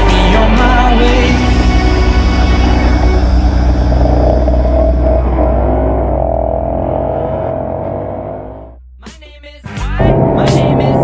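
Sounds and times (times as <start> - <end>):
higher steady engine note: 0.0 - 8.8
dirt bike engines idling: 1.2 - 8.8.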